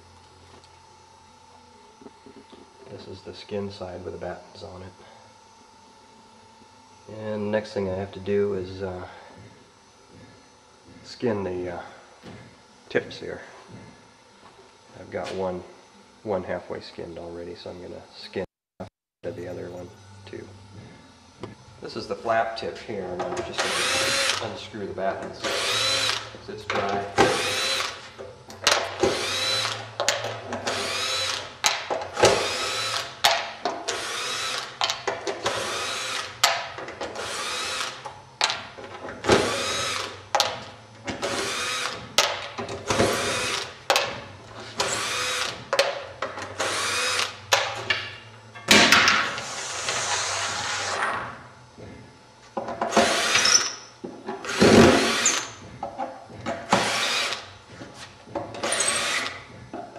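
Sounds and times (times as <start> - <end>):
cordless drill whirring: 23.6 - 24.5, 25.4 - 26.3, 27.3 - 28.0, 29.1 - 29.9, 30.7 - 31.5, 32.4 - 33.2, 33.9 - 34.8, 35.5 - 36.4, 37.2 - 38.0, 39.4 - 40.2, 41.2 - 42.0, 43.0 - 43.7, 44.8 - 45.6, 46.6 - 47.4, 54.5 - 55.5, 56.8 - 57.5.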